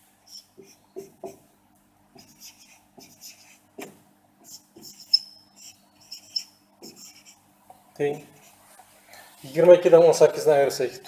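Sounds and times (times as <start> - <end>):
marker pen writing on whiteboard: 0.3 - 1.4, 2.1 - 7.4
marker squeak: 0.3 - 1.4, 4.4 - 7.4.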